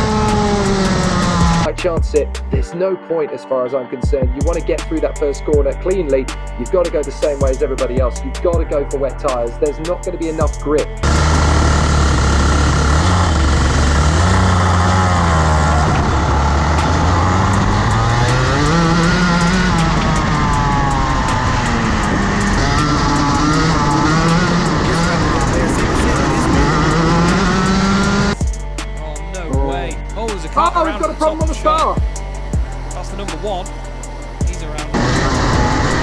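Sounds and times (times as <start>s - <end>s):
kart engine at racing speed: 0.0s - 1.7s, 11.0s - 28.4s, 34.8s - 36.0s
other karts running: 0.0s - 1.7s, 11.0s - 28.4s, 34.9s - 36.0s.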